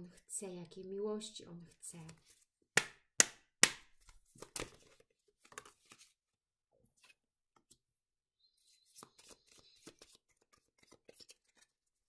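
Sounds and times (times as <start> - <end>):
cards clicking and tapping: 2.1 - 6.1, 8.9 - 11.7.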